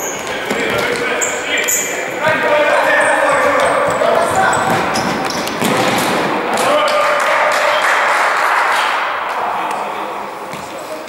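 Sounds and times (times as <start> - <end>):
shoes squeaking on court floor: 0.0 - 6.3
players shouting: 0.6 - 10.3.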